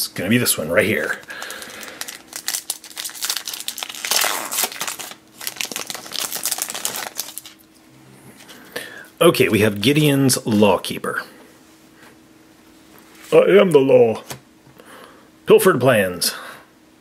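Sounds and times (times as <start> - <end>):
foil wrapper crinkling and tearing: 1.0 - 7.7.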